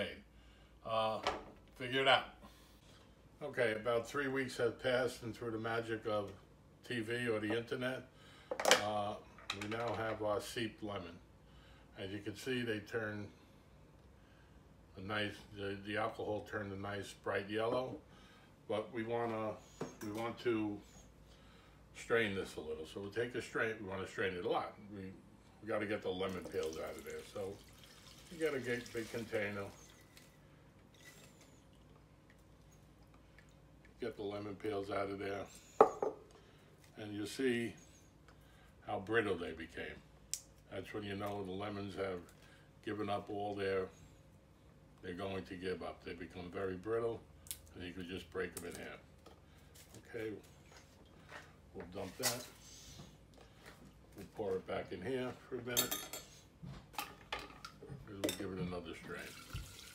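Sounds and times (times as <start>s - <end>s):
liquid dripping: 26.2s - 30.3s, 59.1s - 59.9s.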